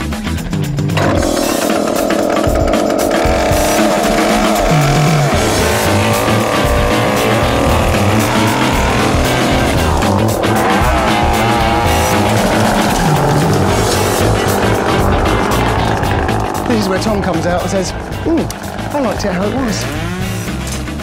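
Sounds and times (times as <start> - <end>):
background music: 0.0 - 21.0
chainsaw revving: 1.0 - 21.0.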